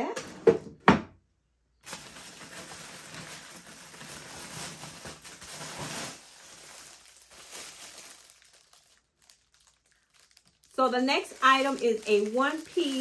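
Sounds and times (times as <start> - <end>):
plastic packaging crinkling: 1.8 - 13.0.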